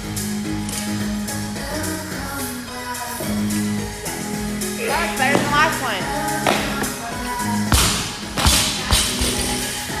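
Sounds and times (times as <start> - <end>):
pop music: 0.0 - 10.0.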